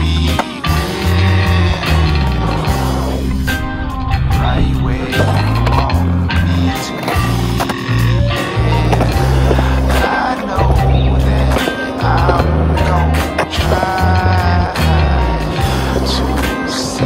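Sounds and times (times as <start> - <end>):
loud music with heavy bass: 0.0 - 17.0
skateboard wheels rolling on concrete: 0.0 - 17.0.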